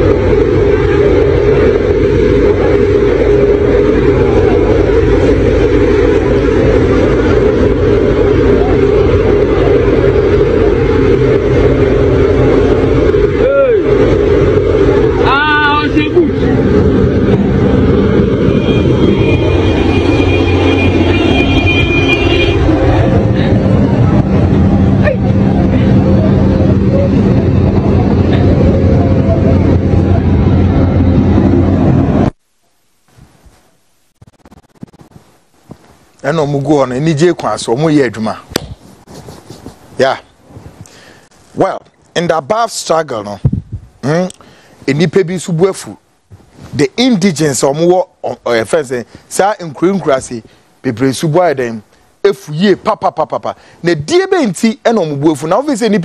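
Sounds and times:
people's voices: 0.0 - 21.0, 22.4 - 31.6
engine running: 0.0 - 32.4.

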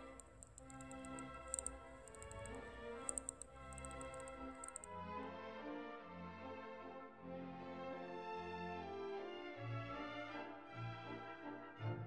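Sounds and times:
mechanical watch ticking: 0.0 - 4.9.

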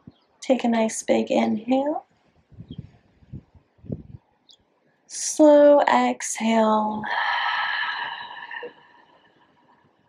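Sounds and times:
woman exhaling slowly: 7.1 - 9.1.

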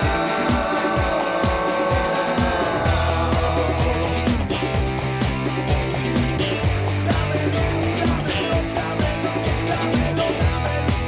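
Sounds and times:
bass guitar: 0.0 - 11.0
distorted electric guitars: 0.0 - 11.0
kick drum beat: 0.0 - 11.0.

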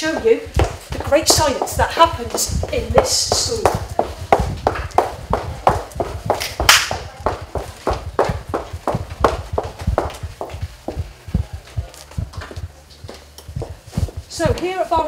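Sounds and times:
footsteps on hard floor: 0.0 - 14.8.

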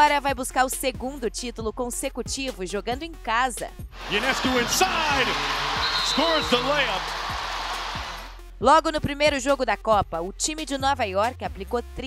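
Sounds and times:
crowd din: 3.9 - 8.4.

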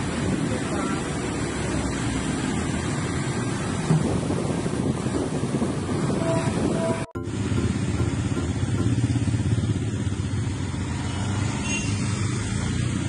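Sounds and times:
wind buffeting microphone: 3.8 - 7.1.

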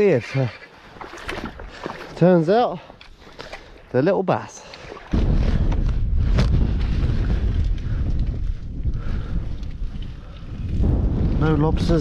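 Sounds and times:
wind buffeting microphone: 5.0 - 12.0.

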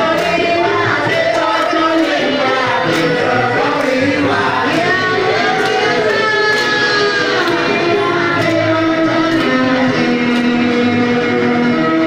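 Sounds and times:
crowd singing: 0.0 - 12.0
music: 0.0 - 12.0
singer on microphone: 0.0 - 12.0.

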